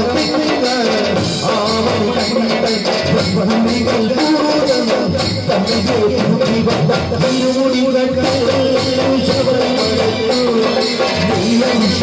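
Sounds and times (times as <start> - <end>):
drums: 0.0 - 12.0
jingling percussion: 0.0 - 12.0
person singing devotional song: 0.0 - 12.0.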